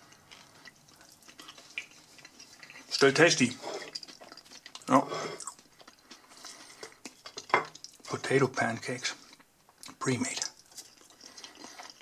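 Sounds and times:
person chewing crispy food: 0:00.0 - 0:08.2, 0:09.1 - 0:12.0.

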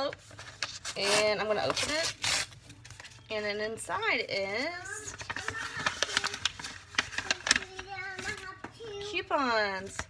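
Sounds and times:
paper and envelope rustling: 0:00.0 - 0:10.0.

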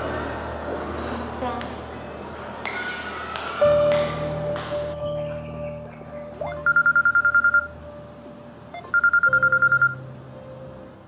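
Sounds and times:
background music drone: 0:00.0 - 0:11.0
mobile phone ringing: 0:06.4 - 0:07.8, 0:08.7 - 0:10.1.

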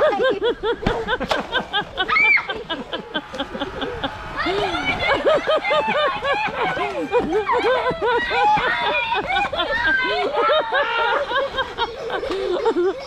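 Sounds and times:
girls laughing: 0:00.0 - 0:13.0.

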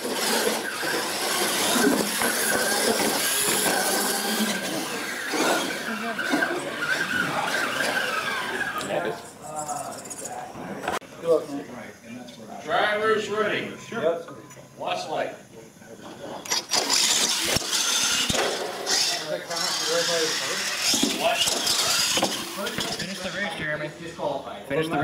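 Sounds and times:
rc trucks rushing noise: 0:00.0 - 0:11.0, 0:16.4 - 0:23.6
voices: 0:00.0 - 0:25.0.

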